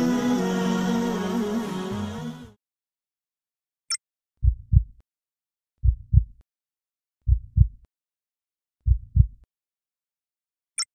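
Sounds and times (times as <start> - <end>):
heartbeat thumps: 4.4 - 5.0, 5.8 - 6.4, 7.3 - 7.8, 8.8 - 9.4.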